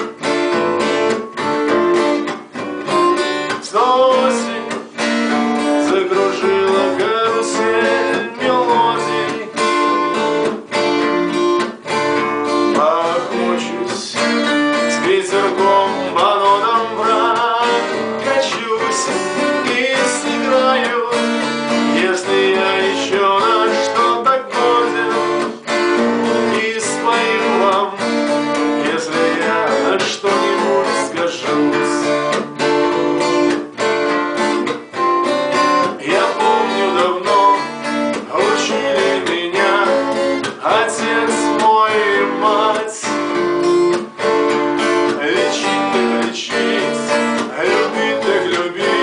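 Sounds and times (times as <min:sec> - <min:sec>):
acoustic guitar strumming: 0:00.0 - 0:49.0
man singing: 0:02.8 - 0:33.3, 0:35.6 - 0:43.8, 0:44.7 - 0:49.0.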